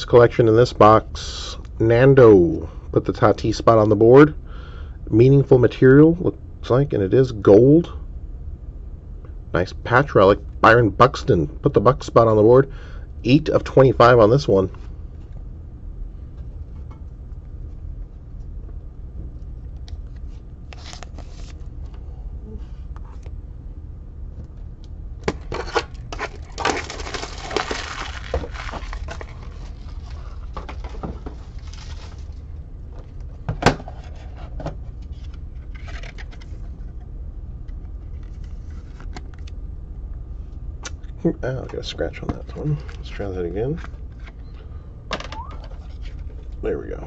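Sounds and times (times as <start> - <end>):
low hum: 0.0 - 47.0
trading cards rustling: 19.7 - 21.9, 25.3 - 32.4, 33.9 - 36.8.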